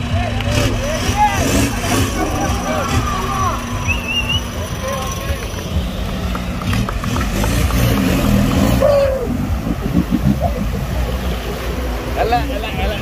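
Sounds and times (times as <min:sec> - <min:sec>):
spectators shouting: 0:00.0 - 0:06.6, 0:07.4 - 0:11.4
off-road vehicle engine revving: 0:00.0 - 0:13.0.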